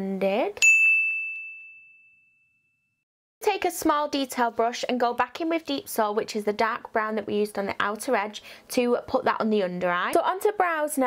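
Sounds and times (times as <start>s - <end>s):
high bell-like ding: 0.6s - 3.0s.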